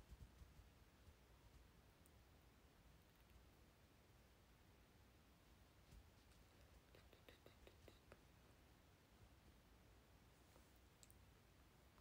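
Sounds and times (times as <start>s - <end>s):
faint soft clicks: 0.0s - 2.2s, 3.1s - 3.5s, 10.5s - 11.3s.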